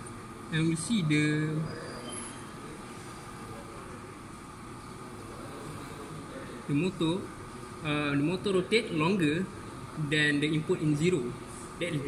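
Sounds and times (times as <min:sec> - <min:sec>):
room hum: 0:00.0 - 0:12.0.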